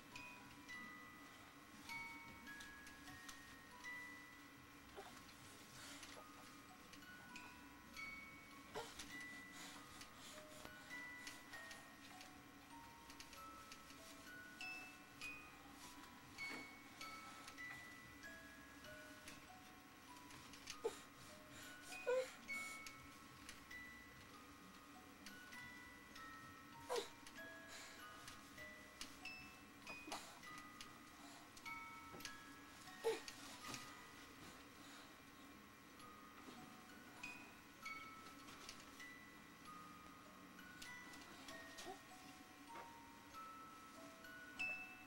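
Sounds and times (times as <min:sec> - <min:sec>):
crib toy chime lullaby: 0:00.0 - 0:45.0.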